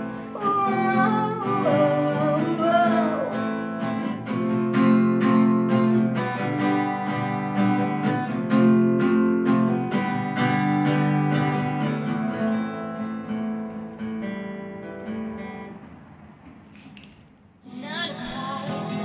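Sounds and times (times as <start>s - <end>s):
acoustic guitar strumming chords: 0.0s - 16.1s, 17.6s - 19.0s.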